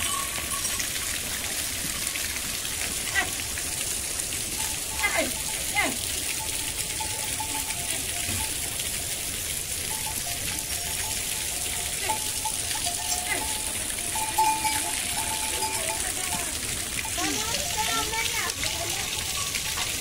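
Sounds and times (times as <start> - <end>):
heavy rain falling: 0.0 - 20.0.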